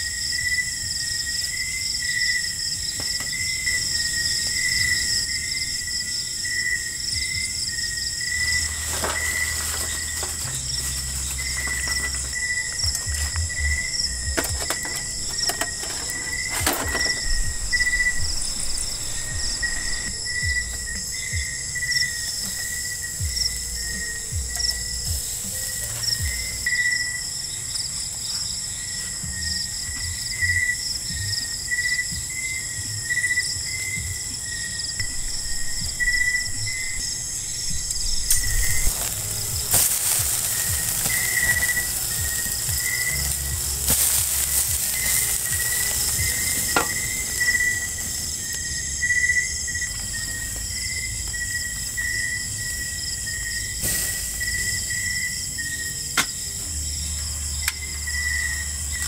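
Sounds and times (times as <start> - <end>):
crickets trilling: 0.0 - 59.0
hiss with sharp cracks: 2.5 - 29.2, 37.6 - 50.6, 51.3 - 55.4.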